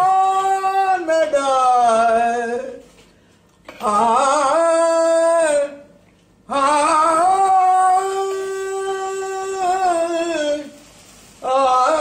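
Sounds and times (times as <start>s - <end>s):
man singing a long note: 0.0s - 2.8s, 3.8s - 5.9s, 6.5s - 10.8s, 11.4s - 12.0s.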